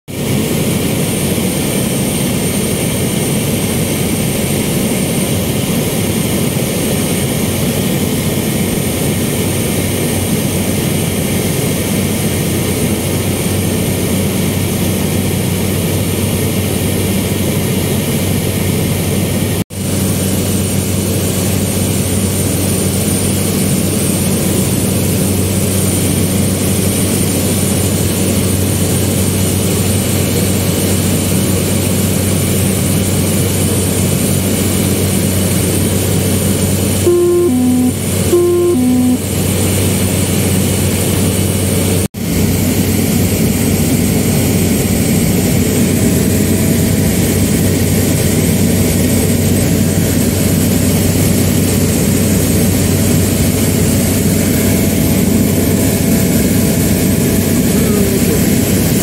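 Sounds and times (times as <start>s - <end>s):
propeller aircraft engine drone: 0.1s - 59.0s.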